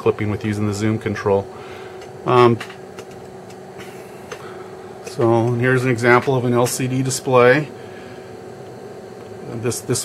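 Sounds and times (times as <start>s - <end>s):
cooling fans humming: 0.0s - 10.0s.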